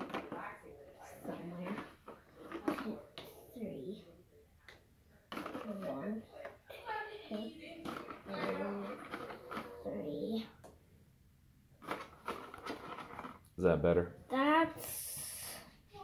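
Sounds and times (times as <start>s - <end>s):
child talking: 2.7s - 4.1s, 5.7s - 7.6s, 8.3s - 9.0s, 9.8s - 10.6s, 14.3s - 16.0s.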